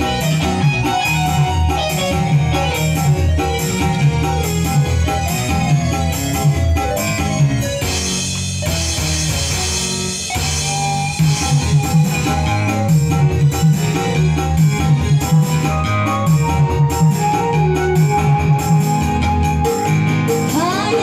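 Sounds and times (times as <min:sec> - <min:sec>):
keyboard melody: 0:00.0 - 0:21.0
programmed drum beat: 0:00.0 - 0:21.0
pulsing bass line: 0:00.0 - 0:21.0.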